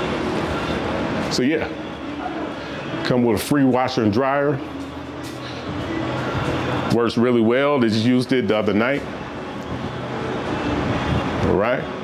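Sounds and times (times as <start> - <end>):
rushing noise: 0.0 - 12.0.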